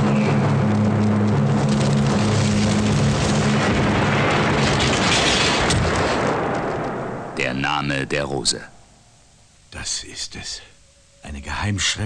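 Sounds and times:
large fire roaring and crackling: 0:00.0 - 0:08.7
sharp crack: 0:00.0 - 0:09.4.

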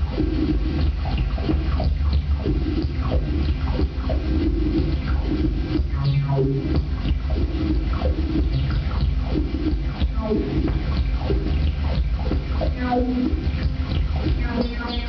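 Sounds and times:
electronic crackles and sputters: 0:00.0 - 0:15.0
low electronic rumble: 0:00.0 - 0:15.0.

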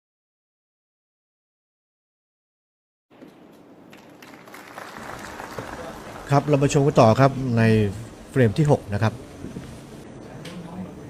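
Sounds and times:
audience applauding: 0:03.8 - 0:07.6.

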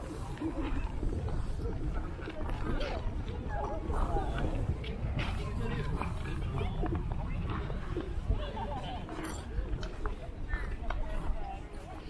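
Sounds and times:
faint distant voices: 0:00.0 - 0:12.0
steady low rumble: 0:00.0 - 0:12.0.

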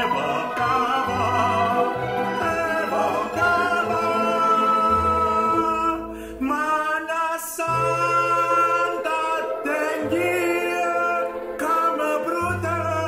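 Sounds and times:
instrumental accompaniment with bass: 0:00.0 - 0:06.9
man singing with vibrato: 0:00.0 - 0:13.0.

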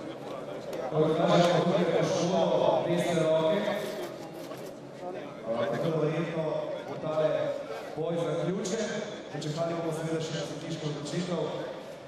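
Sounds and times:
man talking: 0:00.0 - 0:04.2, 0:05.1 - 0:11.8
background room noise: 0:00.0 - 0:12.0.

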